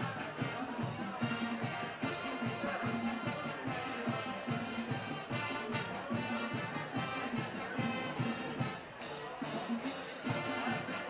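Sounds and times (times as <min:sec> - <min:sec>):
low brass repeating short notes: 0:00.0 - 0:11.0
marching band playing: 0:00.0 - 0:11.0.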